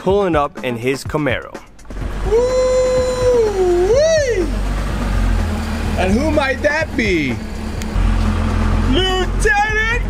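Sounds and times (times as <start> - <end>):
car engine idling: 1.6 - 10.0.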